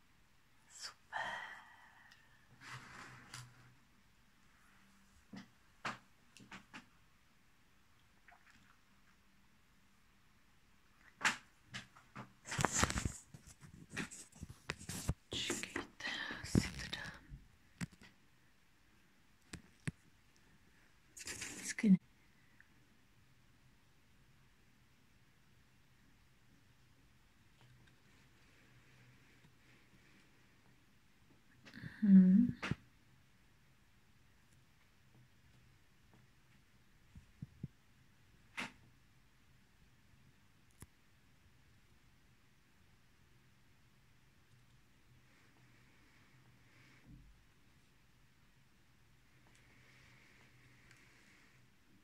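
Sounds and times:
close rustling and handling: 11.8s - 17.2s.

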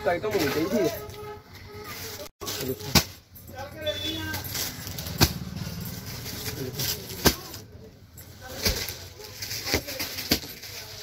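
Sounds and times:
plastic packets crinkling and knocking: 8.4s - 11.0s.

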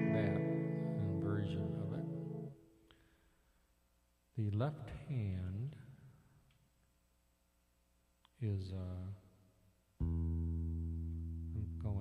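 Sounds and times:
keyboard guitar chord: 0.0s - 2.6s.

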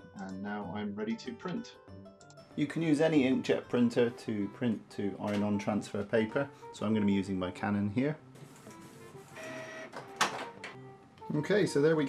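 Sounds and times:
printer mechanical whirr: 8.6s - 10.0s.

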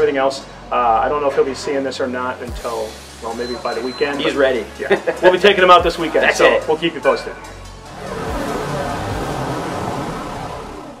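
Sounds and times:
vehicle engine rushing rumble: 7.8s - 11.0s.

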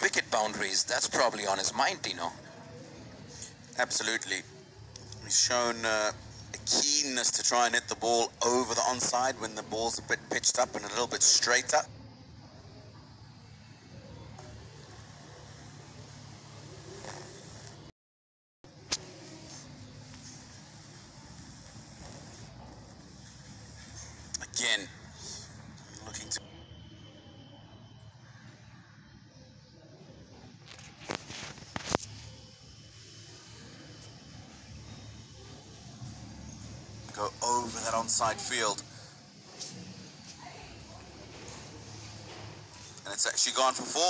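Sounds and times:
faint ground ambience: 0.0s - 17.9s, 18.7s - 44.0s
steady low hum: 0.0s - 17.9s, 18.7s - 44.0s
even hiss: 14.8s - 17.9s, 18.8s - 26.4s.

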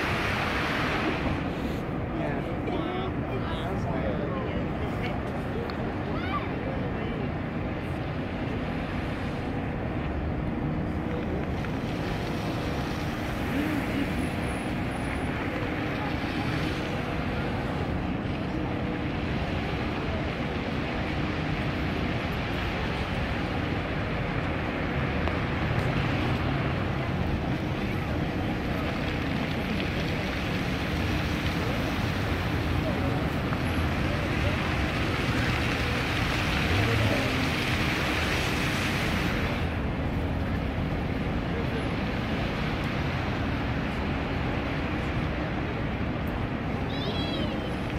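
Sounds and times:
fountain water jets splashing: 0.0s - 47.9s
murmur of crowd: 0.0s - 47.9s.

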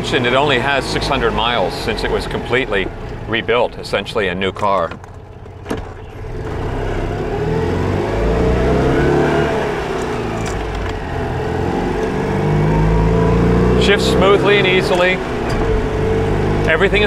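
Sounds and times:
car engine revving through gears: 0.0s - 3.5s, 5.0s - 17.0s.

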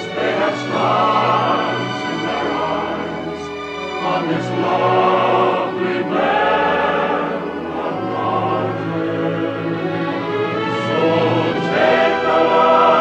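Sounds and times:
choir singing: 0.0s - 13.0s
orchestral accompaniment: 0.0s - 13.0s.

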